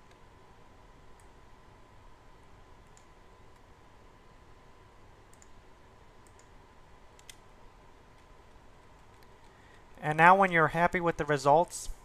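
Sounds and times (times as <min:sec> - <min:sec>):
faint steady background tone: 0:00.0 - 0:12.0
computer mouse clicks: 0:01.1 - 0:01.4, 0:02.8 - 0:03.7, 0:05.3 - 0:05.6, 0:06.2 - 0:07.5, 0:08.9 - 0:09.8.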